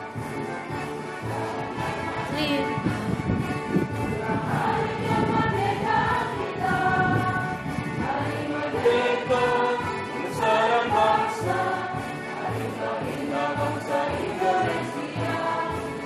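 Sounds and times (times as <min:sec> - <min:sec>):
musical accompaniment: 0:00.0 - 0:16.0
choir singing: 0:01.1 - 0:02.5, 0:04.1 - 0:16.0.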